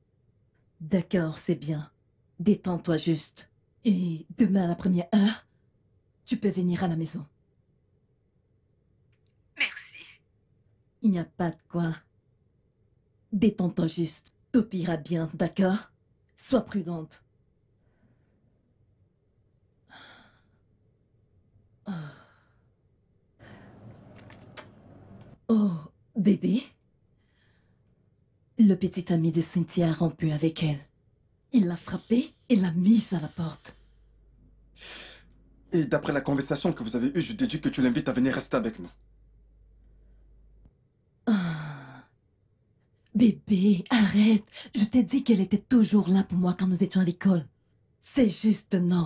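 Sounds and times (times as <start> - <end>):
soft breathy noise: 23.4 - 24.2.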